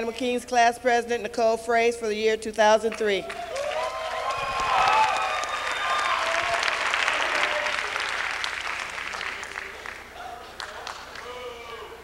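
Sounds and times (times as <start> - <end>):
audience applauding: 3.3 - 11.4.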